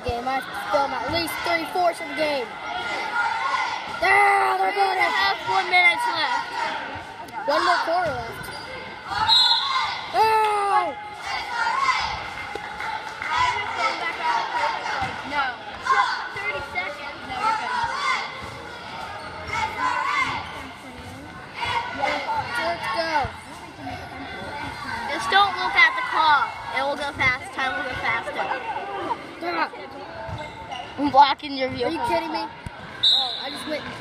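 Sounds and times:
spectators talking and shouting: 0.0 - 34.0.

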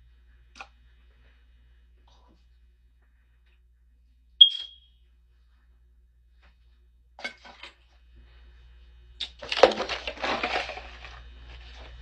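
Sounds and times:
short high-pitched ping: 4.4 - 4.9.

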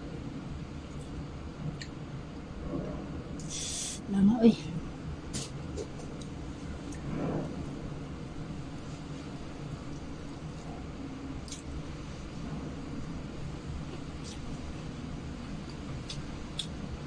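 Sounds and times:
low room hum: 0.0 - 17.0
person eating with fingers: 14.2 - 14.5.

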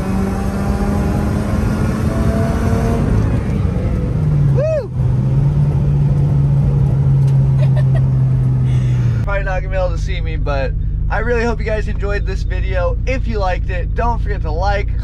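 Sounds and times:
car engine running: 0.0 - 15.0.

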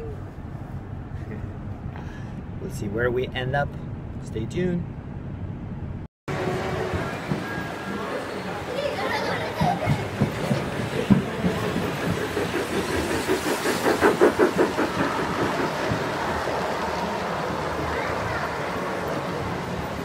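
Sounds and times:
murmur of voices: 15.4 - 20.0.

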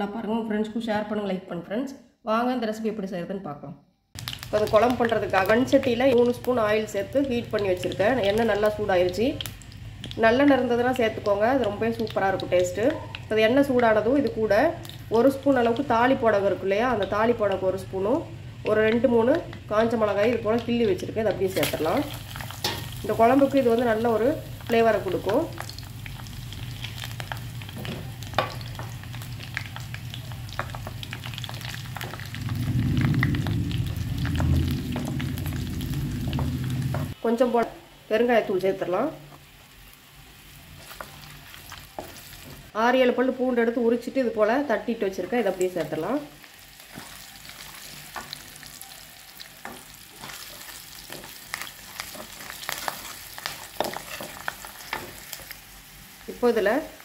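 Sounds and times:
chillies sizzling in hot oil: 4.2 - 57.0
low hum: 14.8 - 37.2.

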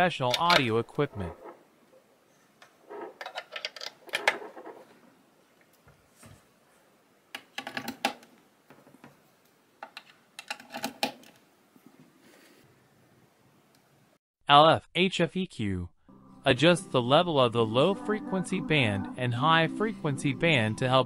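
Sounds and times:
jack plugs clicking into sockets: 0.3 - 0.7.

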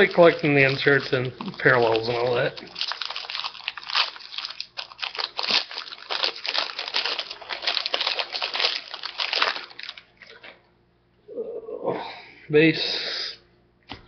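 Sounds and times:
plastic wrapper crinkling: 0.0 - 10.6.

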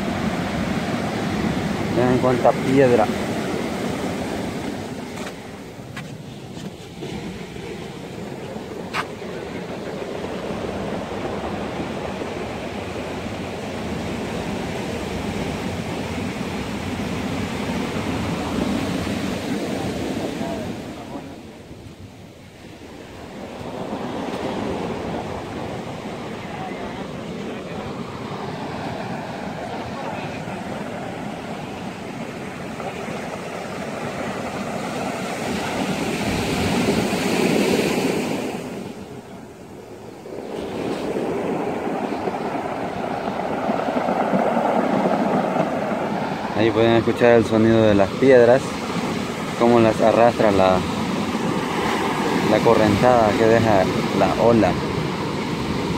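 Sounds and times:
surf breaking on cobble beach: 0.0 - 55.9
wind on microphone: 0.0 - 55.9.

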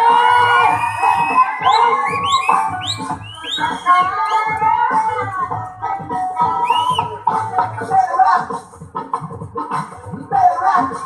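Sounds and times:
crowd cheering: 0.0 - 4.5
loud dance music with steady beat: 0.0 - 11.0.

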